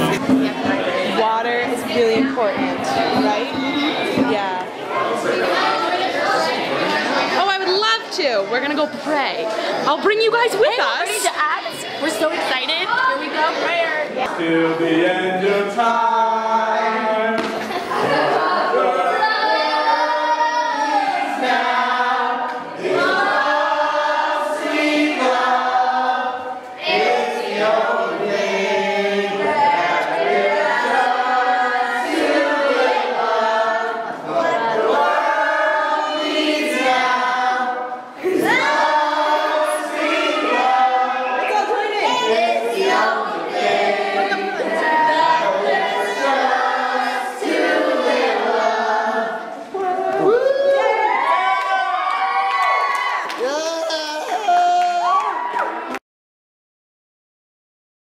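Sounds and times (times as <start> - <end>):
group singing: 0.0 - 52.4.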